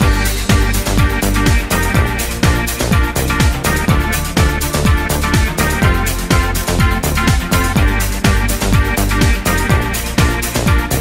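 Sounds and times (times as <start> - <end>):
electronic dance music: 0.0 - 11.0
steady kick drum: 0.0 - 11.0
sustained synth chords: 0.0 - 11.0.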